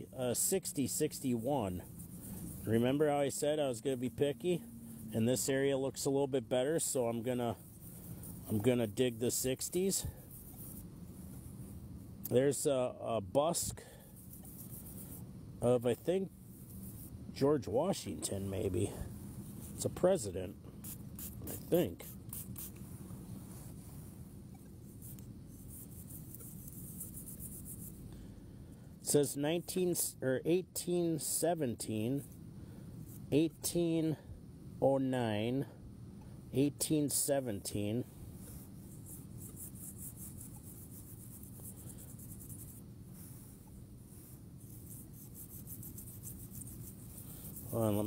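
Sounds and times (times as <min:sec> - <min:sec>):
low steady hum: 0:00.0 - 0:48.0
soft scrubbing of dirt off coin: 0:38.4 - 0:48.0.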